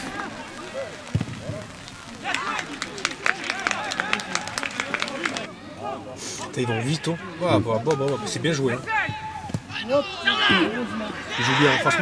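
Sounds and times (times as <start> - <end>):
distant players calling out: 0.0 - 12.0.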